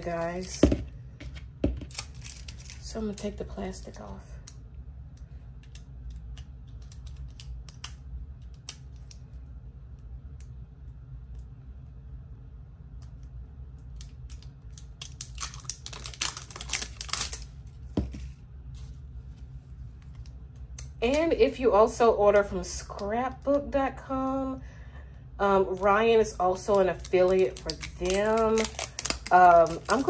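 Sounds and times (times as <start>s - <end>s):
plastic crinkling: 1.7s - 4.0s, 14.0s - 19.0s, 25.7s - 30.0s.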